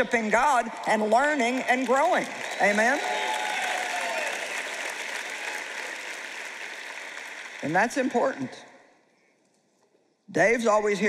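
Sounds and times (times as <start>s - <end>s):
large audience applauding: 0.0s - 8.6s.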